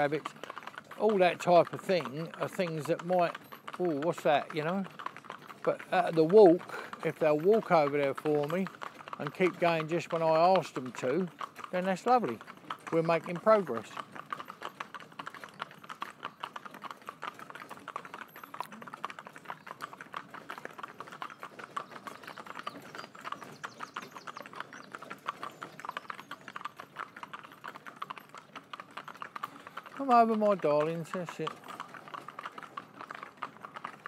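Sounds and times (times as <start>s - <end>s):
hooves clip-clopping on road: 0.0s - 34.0s.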